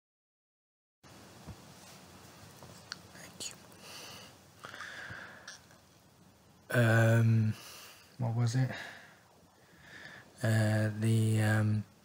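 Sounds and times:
man breathing softly: 0:03.7 - 0:05.6, 0:07.6 - 0:10.4.

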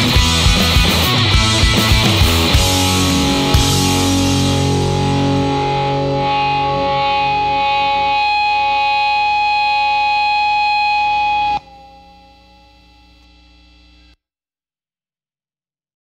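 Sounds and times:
distorted electric guitar chord: 0:00.0 - 0:14.2.

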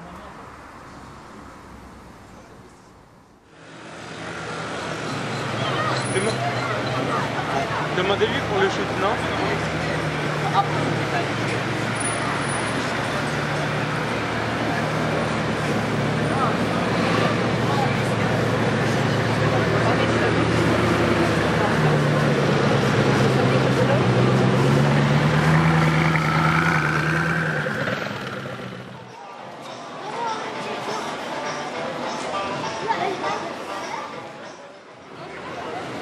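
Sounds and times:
crowd chatter: 0:00.0 - 0:36.0
traffic noise: 0:00.0 - 0:36.0
car engine low drone: 0:12.8 - 0:29.1.

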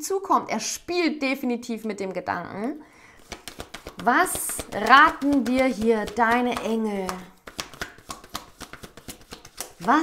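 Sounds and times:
cards being shuffled by hand: 0:03.2 - 0:10.0.

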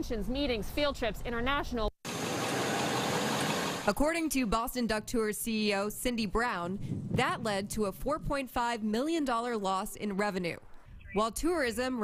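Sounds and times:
vehicle engine and road noise: 0:02.1 - 0:03.9.

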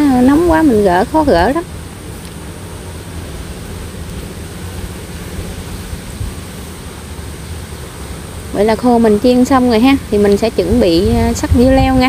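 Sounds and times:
hot oil frying fish: 0:00.0 - 0:12.0.

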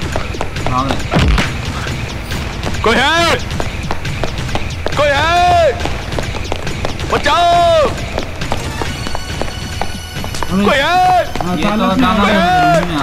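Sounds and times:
man shouting for help: 0:05.0 - 0:05.8, 0:07.1 - 0:08.0, 0:10.5 - 0:13.0.

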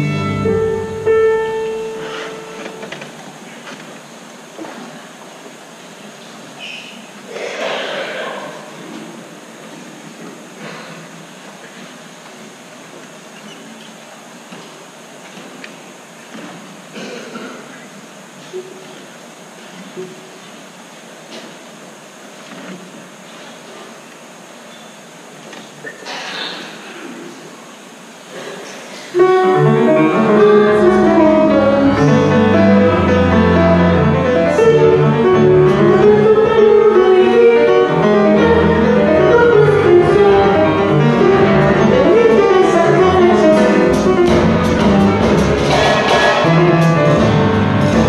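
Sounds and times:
bowed string chord: 0:00.0 - 0:02.6
concert hall hiss: 0:00.0 - 0:48.0.

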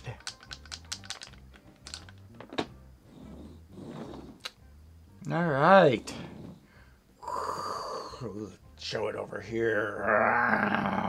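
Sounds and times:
wooden toy car clicking and tapping: 0:00.0 - 0:02.8.

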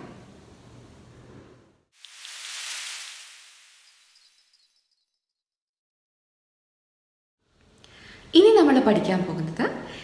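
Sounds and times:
hissing whoosh: 0:02.0 - 0:04.4.

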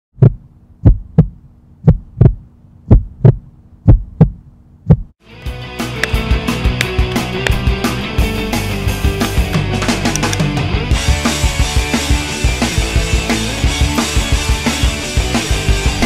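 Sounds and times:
heartbeat thumps: 0:00.2 - 0:05.2
rock music with drums: 0:05.2 - 0:16.0.

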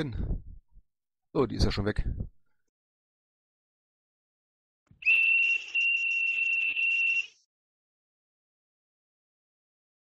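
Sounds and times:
high steady whistle tone: 0:05.0 - 0:07.5.

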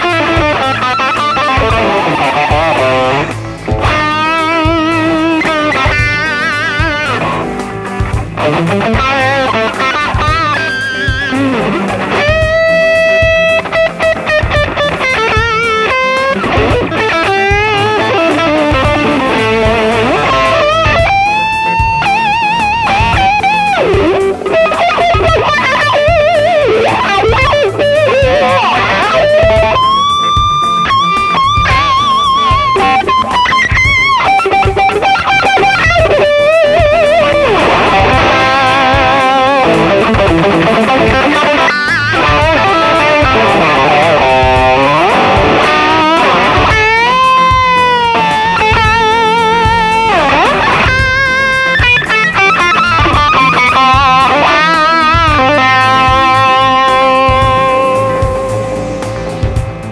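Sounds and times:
overdriven electric guitar lead: 0:00.0 - 0:59.9.

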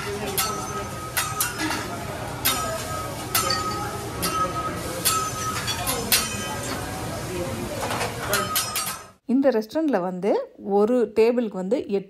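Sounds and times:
metal utensils clinking on griddle: 0:00.0 - 0:07.0, 0:07.7 - 0:09.2
restaurant chatter: 0:00.0 - 0:09.3.

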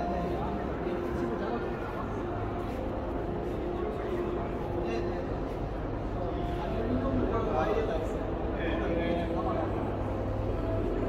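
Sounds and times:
chatter of people talking: 0:00.0 - 0:11.0
steady low hum: 0:00.0 - 0:11.0.

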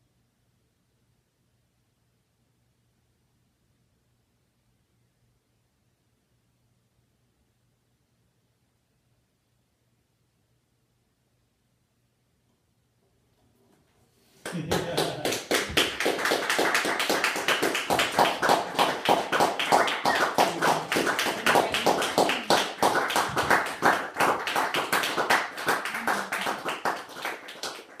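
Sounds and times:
audience applauding: 0:14.4 - 0:28.0
voices: 0:14.5 - 0:15.9, 0:17.3 - 0:28.0.

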